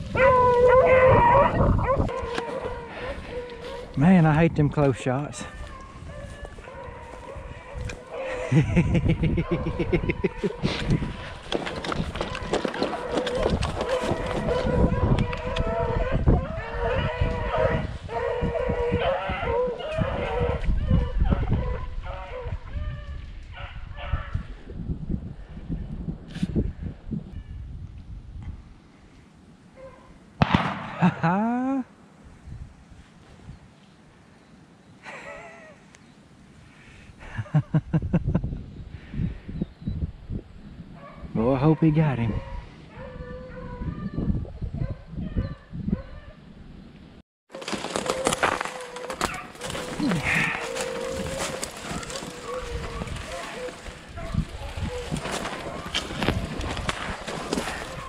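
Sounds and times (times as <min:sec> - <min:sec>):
dogs baying: 0:00.1 - 0:04.0, 0:05.4 - 0:22.6, 0:47.6 - 0:58.0
shotgun shot: 0:30.4 - 0:31.1
footsteps through dry leaves: 0:47.5 - 0:58.0.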